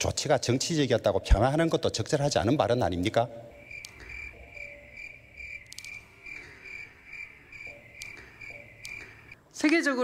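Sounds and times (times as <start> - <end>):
cricket chirping: 3.4 - 9.4.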